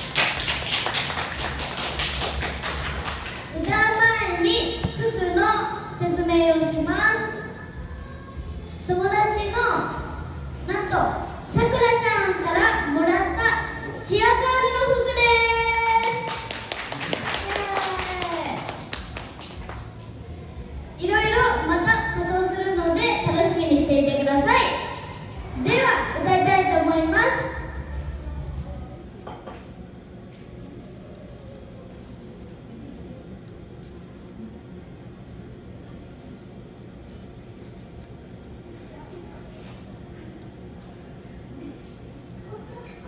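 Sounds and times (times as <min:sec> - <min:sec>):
audience clapping: 0:00.0 - 0:03.6, 0:15.7 - 0:20.0.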